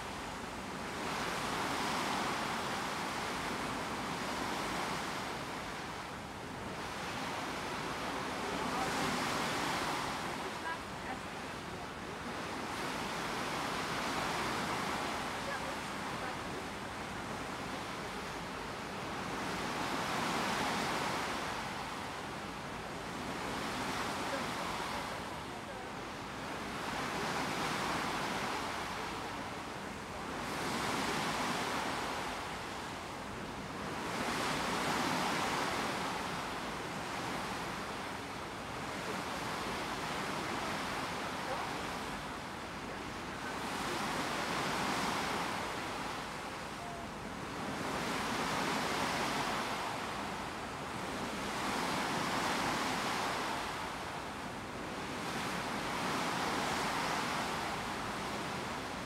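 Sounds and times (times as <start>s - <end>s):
sea water rushing past ship bow: 0.0s - 59.0s.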